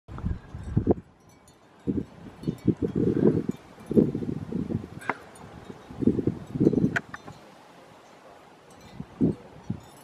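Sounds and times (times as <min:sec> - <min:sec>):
wind buffeting microphone: 0:00.1 - 0:07.4, 0:08.8 - 0:10.0.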